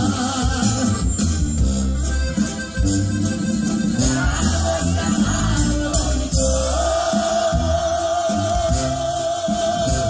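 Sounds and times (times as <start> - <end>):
brass band music: 0.0 - 10.0
heavy low bass: 0.0 - 10.0.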